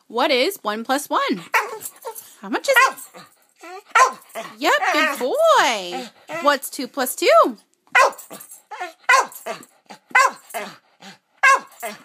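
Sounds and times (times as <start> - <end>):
dog barking: 1.5 - 1.9, 2.8 - 3.2, 3.9 - 5.2, 7.9 - 10.7, 11.4 - 12.0
person speaking: 4.4 - 7.6.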